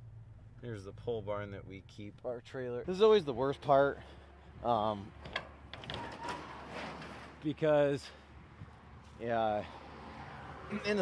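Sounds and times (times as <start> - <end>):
metal barn door click: 5.2 - 7.4
sliding metal door rattling: 5.2 - 7.5.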